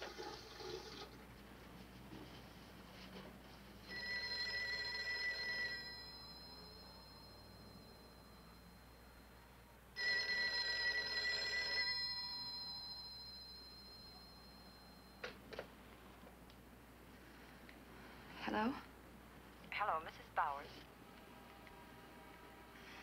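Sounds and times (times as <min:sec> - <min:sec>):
telephone bell ringing: 0:03.8 - 0:15.6.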